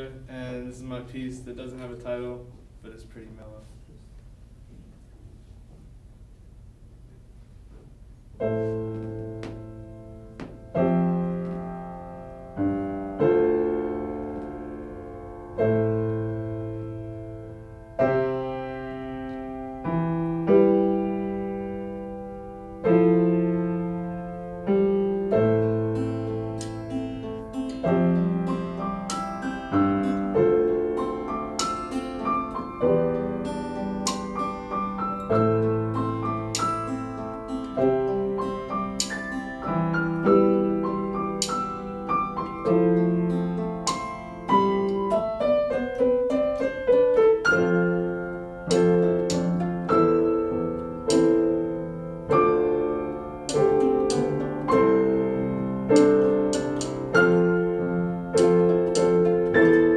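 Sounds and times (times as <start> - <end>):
acoustic guitar: 7.1 - 59.9
piano: 7.2 - 59.9.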